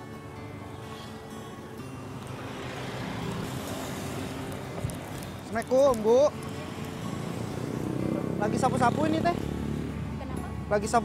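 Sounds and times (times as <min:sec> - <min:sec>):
road traffic noise: 0:00.0 - 0:11.0
soft background music: 0:00.0 - 0:11.0
car passing: 0:00.6 - 0:11.0.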